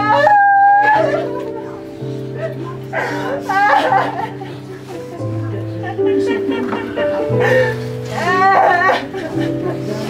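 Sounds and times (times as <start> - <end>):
woman wailing: 0.0 - 1.8, 2.4 - 4.7, 5.8 - 10.0
keyboard chords: 1.0 - 10.0.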